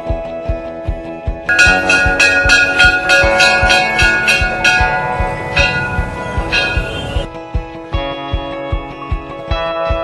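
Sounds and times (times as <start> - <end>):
music with drum beat: 0.0 - 10.0
temple bells ringing: 1.5 - 7.3.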